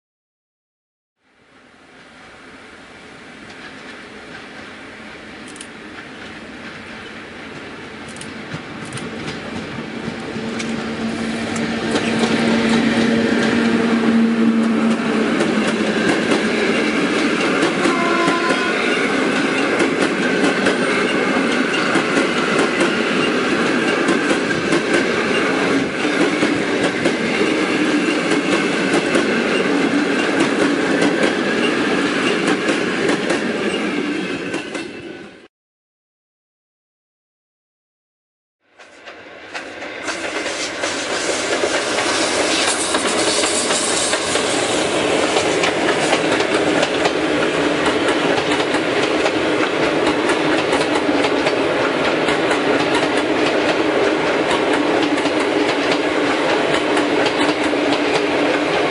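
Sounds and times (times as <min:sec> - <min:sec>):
electric locomotive approaching: 0:01.4 - 0:35.5, 0:38.7 - 0:58.9
rush of carriages passing: 0:08.1 - 0:32.9.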